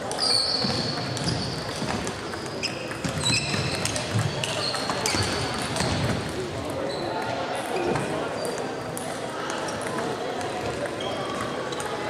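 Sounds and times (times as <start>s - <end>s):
table tennis balls clicking: 0.1s - 6.0s.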